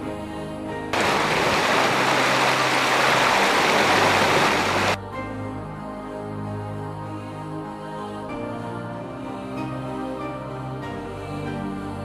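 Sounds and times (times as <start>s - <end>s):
running water rushing: 1.0s - 5.0s.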